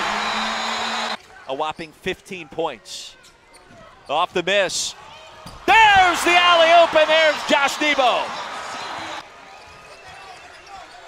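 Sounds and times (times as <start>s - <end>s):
loud crowd noise: 0.0s - 1.4s, 4.9s - 11.0s.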